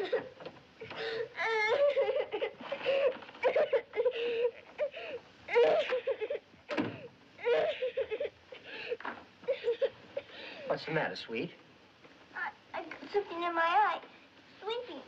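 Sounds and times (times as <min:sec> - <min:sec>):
girl sobbing and whimpering: 0:00.0 - 0:10.5.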